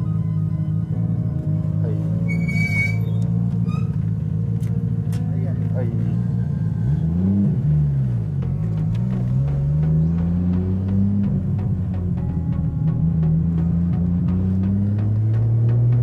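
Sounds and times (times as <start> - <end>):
car engine accelerating: 0.0 - 16.0.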